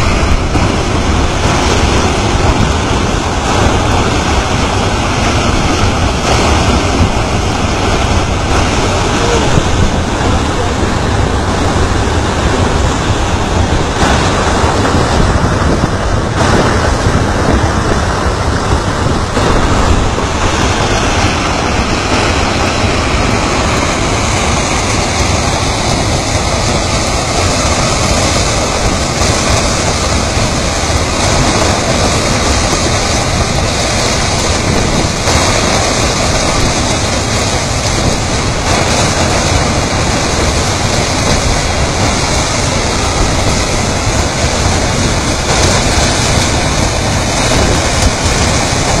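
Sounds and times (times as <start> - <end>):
fast-flowing river rushing: 0.0 - 49.0.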